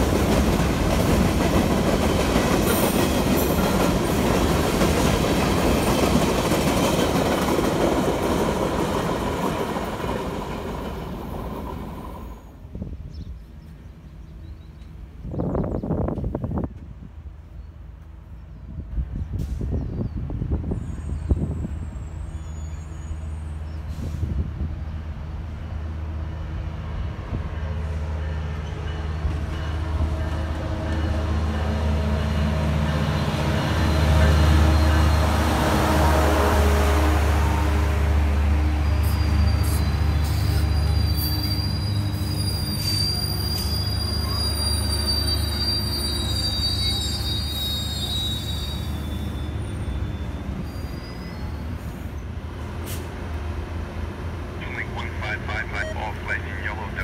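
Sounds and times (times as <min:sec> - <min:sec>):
rush of passing train cars: 0:00.0 - 0:57.0
train engine drone: 0:00.0 - 0:57.0
train wheels squealing: 0:19.5 - 0:24.3, 0:38.8 - 0:52.3.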